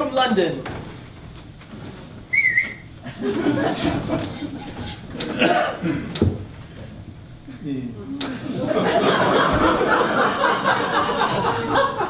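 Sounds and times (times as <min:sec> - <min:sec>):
high wavering whistle: 0:02.3 - 0:02.9.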